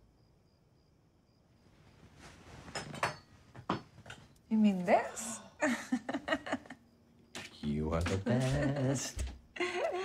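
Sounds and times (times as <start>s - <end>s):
bedding rustling: 1.6s - 4.3s.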